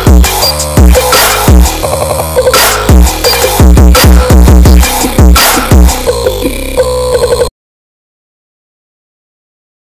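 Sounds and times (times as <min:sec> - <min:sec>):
trap beat with synth hits: 0:00.0 - 0:07.5.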